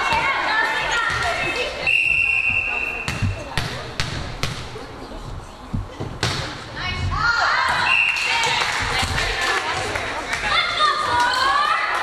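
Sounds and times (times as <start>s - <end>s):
referee's whistle: 1.9s - 3.2s, 7.8s - 8.4s
ball thuds in gym hall: 2.1s - 4.9s, 5.7s - 7.9s.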